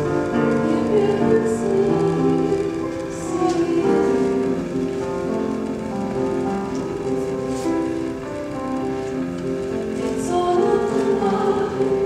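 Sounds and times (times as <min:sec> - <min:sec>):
slow music with long held notes: 0:00.0 - 0:12.0.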